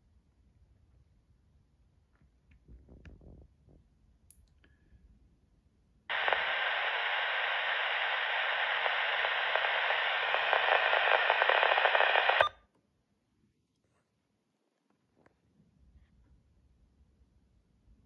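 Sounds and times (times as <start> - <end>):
faint rapid crackle: 6.1 - 12.5
scanner static hiss: 6.1 - 12.5.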